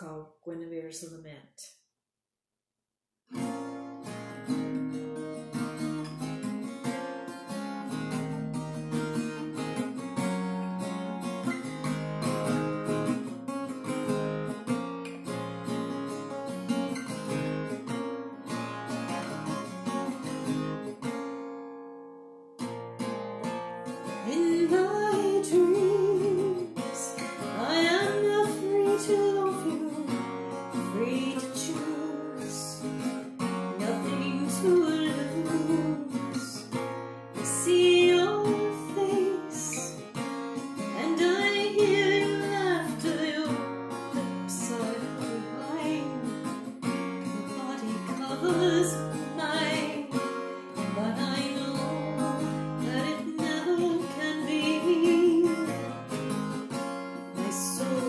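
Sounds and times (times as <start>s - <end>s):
acoustic guitar: 3.3s - 58.0s
woman singing: 24.2s - 33.0s, 33.7s - 36.8s, 37.4s - 40.0s, 40.8s - 46.6s, 47.2s - 56.0s, 57.4s - 58.0s.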